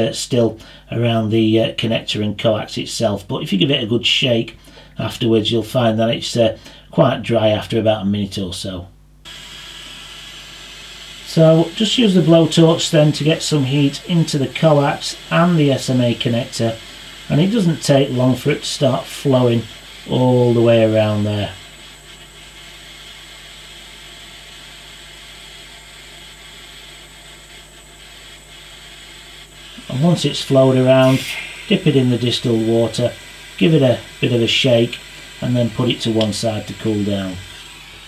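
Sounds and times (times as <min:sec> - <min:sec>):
blowtorch flame hissing: 0:09.3 - 0:38.0.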